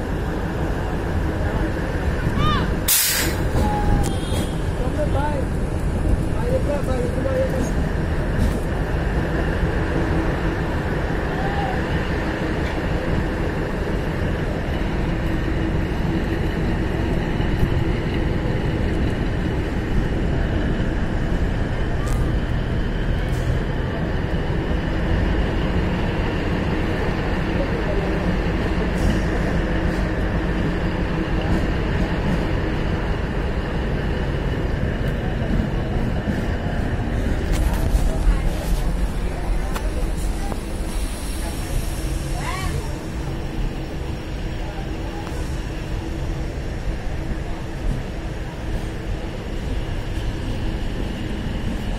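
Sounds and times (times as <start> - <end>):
train rumbling on track: 0.0 - 51.9.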